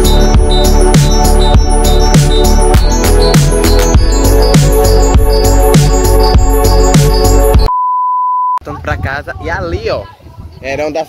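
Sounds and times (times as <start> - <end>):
background music: 0.0 - 7.7
electronic beep tone: 7.5 - 8.6.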